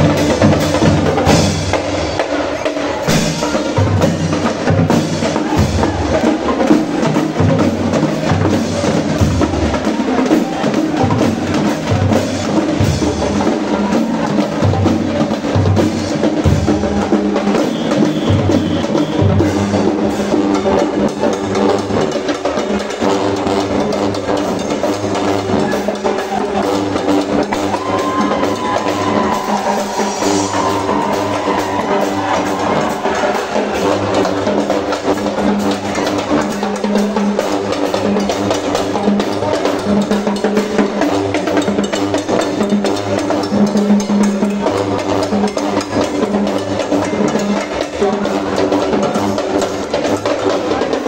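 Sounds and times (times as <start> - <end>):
bass drums: 0.0 - 51.0
cymbals: 0.0 - 51.0
snare drums: 0.0 - 51.0
brass sustained notes: 23.0 - 36.4.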